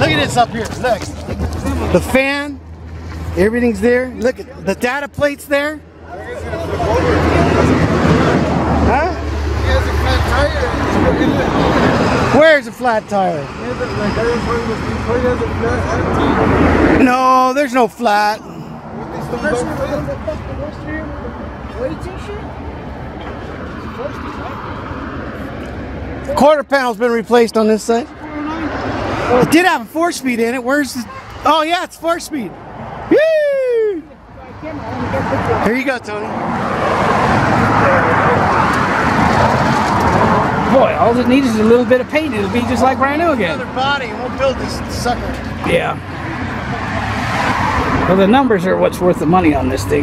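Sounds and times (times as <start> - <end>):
vehicle passing: 0.0 - 50.0.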